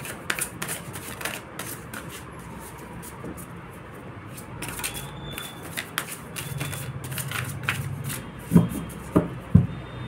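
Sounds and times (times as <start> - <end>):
cards being shuffled: 0.0 - 3.5, 4.3 - 9.2.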